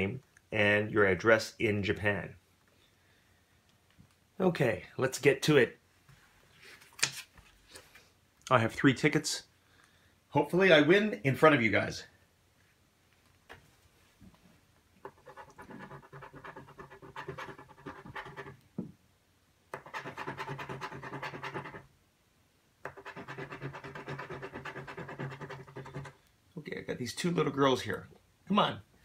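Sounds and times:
coin scratching lottery ticket: 15.0s - 18.6s, 19.8s - 21.9s, 22.8s - 26.2s.

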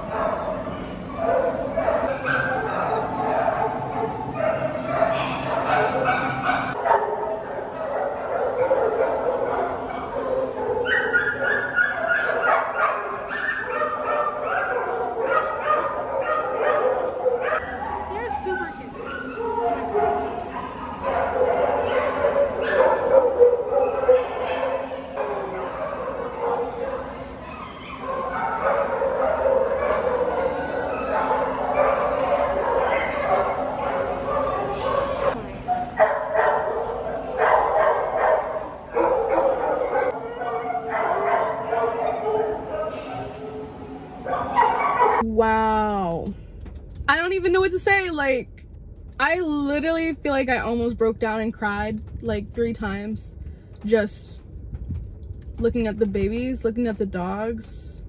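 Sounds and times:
dogs barking and yipping: 0.0s - 45.3s.

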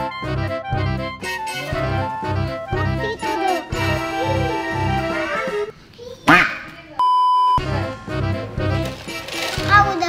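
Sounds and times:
background music: 0.0s - 5.8s, 7.6s - 10.0s.

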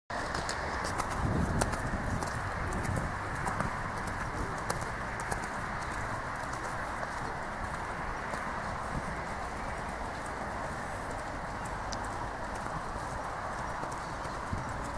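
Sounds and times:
horse hoofbeats on sand: 0.1s - 14.9s.

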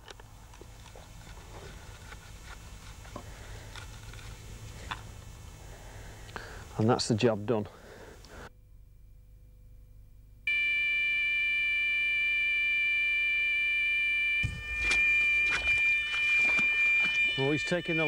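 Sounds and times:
high-pitched alarm tone: 10.5s - 18.0s.

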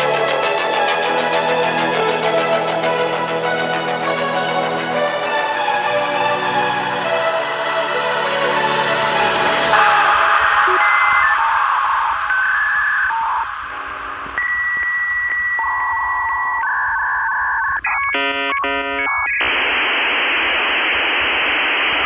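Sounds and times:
stuttering chord burst: 0.0s - 12.3s
held synthesizer tones: 9.5s - 19.6s
static-like hiss: 9.7s - 22.0s.

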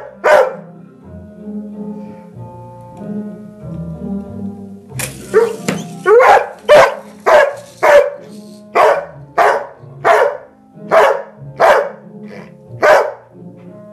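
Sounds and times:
dog barking: 0.0s - 0.7s, 5.3s - 13.3s
background music: 0.0s - 13.9s.

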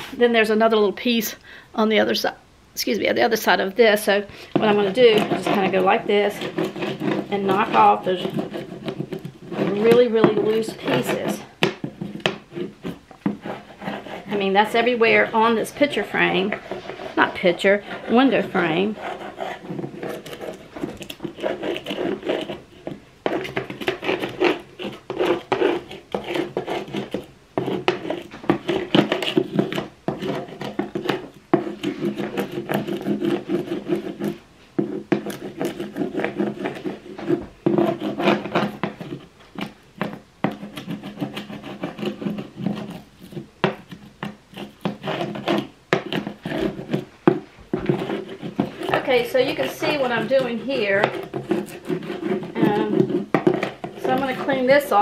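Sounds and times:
brush scrubbing wooden frame: 4.1s - 55.0s.

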